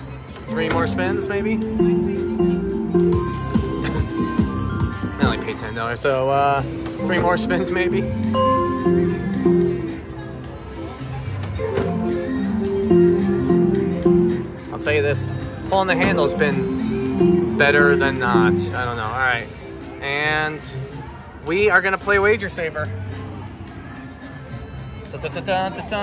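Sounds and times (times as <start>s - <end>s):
slot machine electronic music: 0.4s - 19.7s
melody of short held notes: 0.4s - 20.2s.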